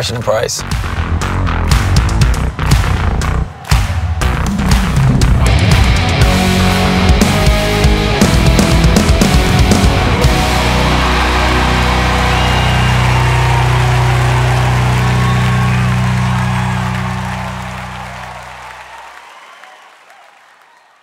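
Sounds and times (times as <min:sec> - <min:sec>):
crowd cheering and applause: 0:01.0 - 0:21.0
rock band chord ringing: 0:05.4 - 0:18.8.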